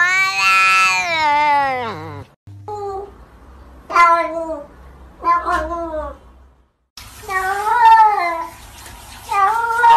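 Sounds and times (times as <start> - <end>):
cat meowing: 0.0 - 2.4.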